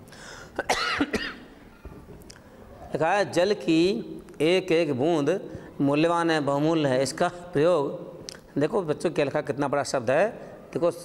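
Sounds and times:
man coughing: 0.6 - 1.5.

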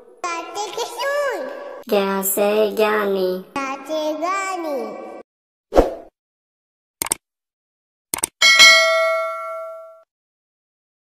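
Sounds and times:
bell ding: 8.4 - 10.1.

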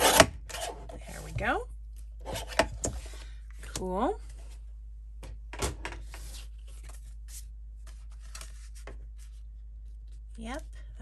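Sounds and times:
low steady hum: 0.0 - 11.0
paper rustling: 6.0 - 10.3.

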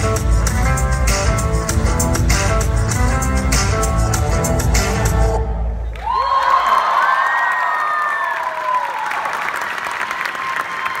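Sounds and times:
audience cheering: 5.8 - 11.0
audience applause: 5.9 - 11.0.

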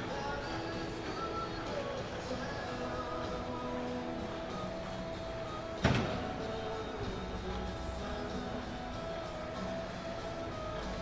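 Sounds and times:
background music: 0.0 - 11.0
loud thump: 5.8 - 6.4.

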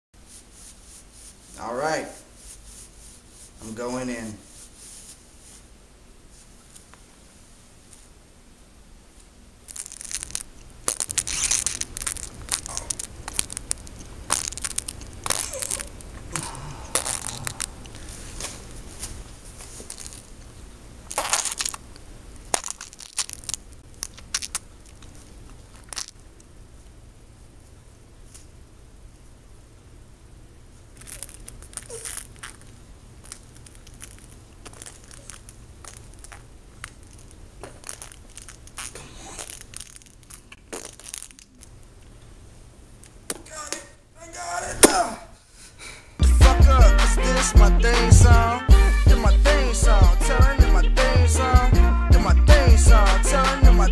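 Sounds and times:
steady low hum: 0.2 - 44.3
crunching and crinkling: 9.6 - 26.5, 30.8 - 42.1.

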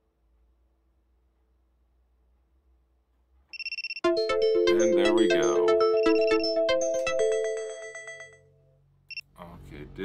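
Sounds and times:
bell-like electronic melody: 4.0 - 8.7.

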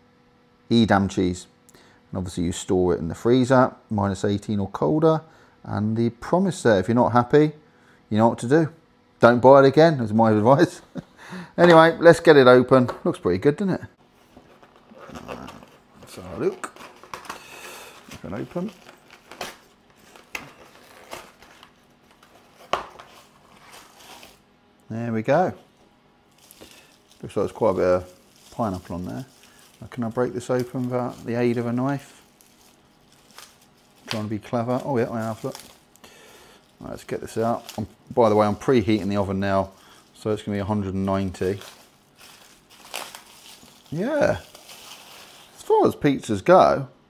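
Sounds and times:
rustling and crackling plastic: 14.1 - 24.5, 25.6 - 45.8
plastic shrink-wrap crinkling: 14.4 - 24.5, 26.2 - 45.8.

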